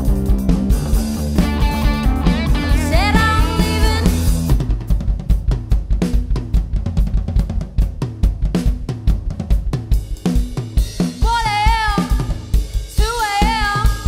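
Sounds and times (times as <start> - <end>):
rock drum kit played hard: 0.0 - 14.0.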